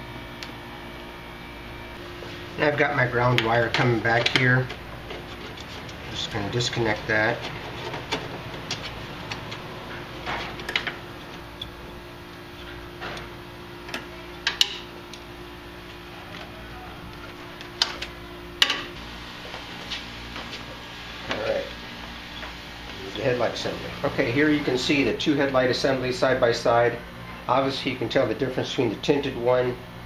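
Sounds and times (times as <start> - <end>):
steady low hum: 0.0 - 30.0
wiring being handled: 3.3 - 11.8.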